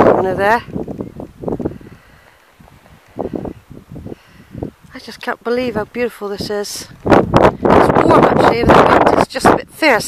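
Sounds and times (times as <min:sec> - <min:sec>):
grass rustling: 0:00.0 - 0:09.1
wind buffeting microphone: 0:00.0 - 0:10.0.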